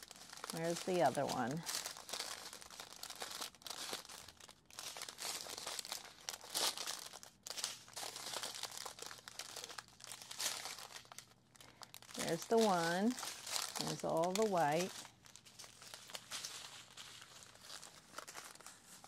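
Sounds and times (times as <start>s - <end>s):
plastic bags crinkling: 0.0s - 19.0s.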